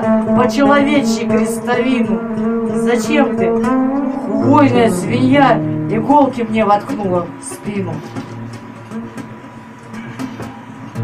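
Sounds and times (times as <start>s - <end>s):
scratchy guitar plucks: 0.0s - 8.5s
quiet guitar drone: 0.0s - 11.0s.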